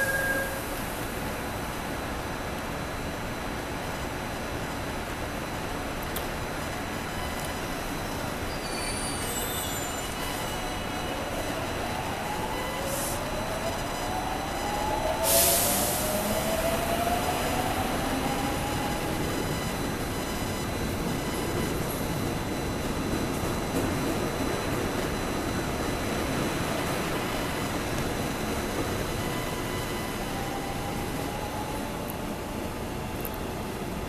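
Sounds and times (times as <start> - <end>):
loud hiss: 15.2 - 16.3.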